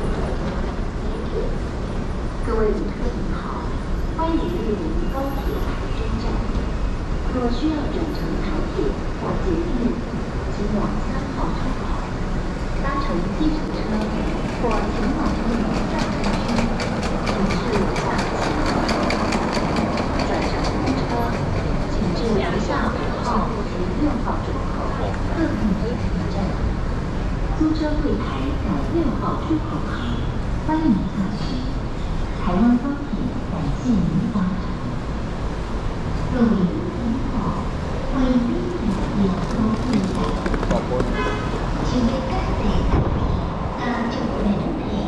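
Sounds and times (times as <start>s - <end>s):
train rumbling past: 0.0s - 45.0s
people's voices: 7.3s - 26.7s, 36.3s - 45.0s
train wheels clicking: 13.7s - 22.2s.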